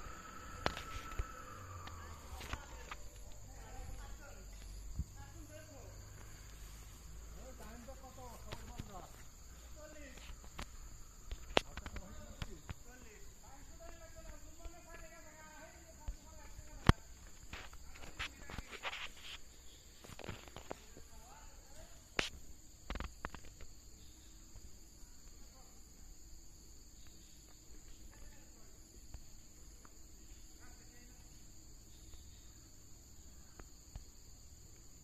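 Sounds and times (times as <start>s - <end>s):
high-pitched insect drone: 0.0s - 35.0s.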